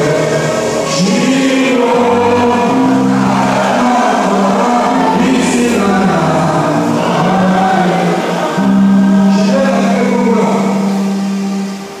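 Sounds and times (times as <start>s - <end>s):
congregation singing gospel song: 0.0s - 12.0s.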